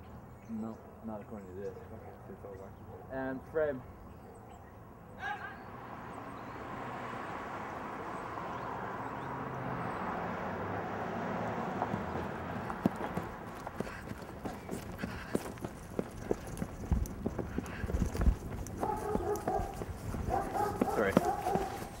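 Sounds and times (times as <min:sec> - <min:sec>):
running footsteps on grass: 0:11.9 - 0:22.0.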